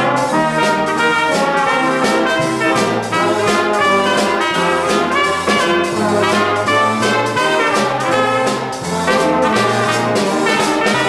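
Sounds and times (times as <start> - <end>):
drum kit cymbal beat: 0.0 - 11.0
horns playing melody: 0.0 - 11.0
low bass line: 8.8 - 10.5.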